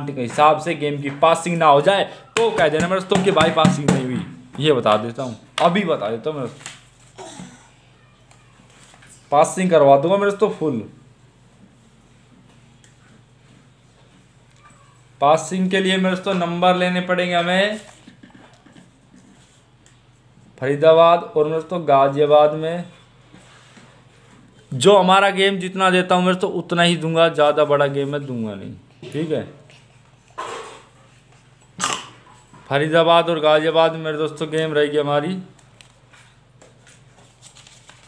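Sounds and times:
marker tapping and rustling: 0:02.4 - 0:05.8.

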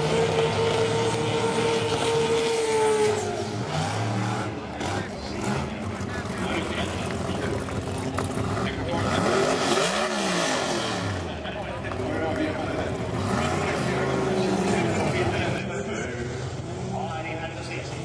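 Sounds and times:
car engine at high revs: 0:00.0 - 0:15.8.

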